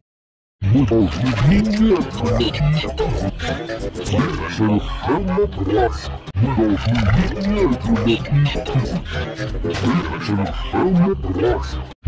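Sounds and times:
warped cartoon voice: 0:00.6 - 0:12.0.

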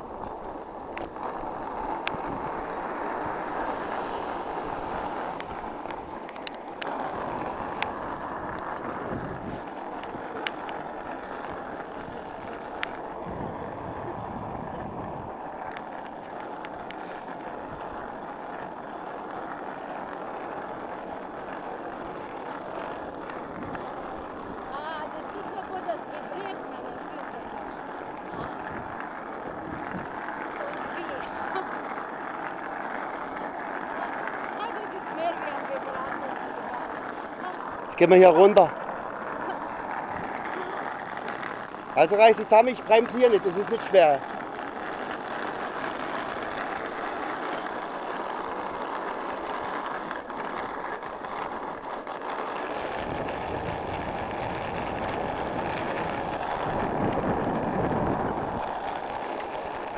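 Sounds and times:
wind on microphone: 0:00.0 - 0:15.8, 0:21.9 - 0:48.9, 0:52.6 - 0:59.9
bicycle tyres rolling: 0:00.0 - 0:59.9.

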